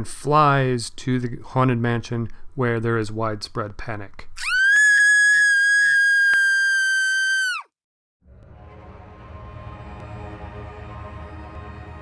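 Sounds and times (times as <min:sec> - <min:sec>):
high-pitched scream: 0:04.4 - 0:07.7.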